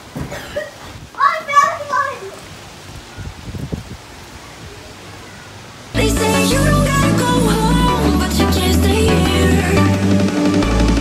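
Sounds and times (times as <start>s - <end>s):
wind buffeting microphone: 2.8s - 4.9s.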